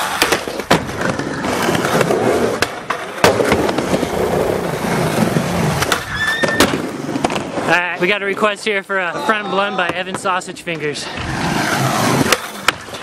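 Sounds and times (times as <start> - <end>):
skateboard clacks: 0.0 - 7.8, 12.0 - 13.0
skateboard wheels rolling on plywood: 0.0 - 13.0.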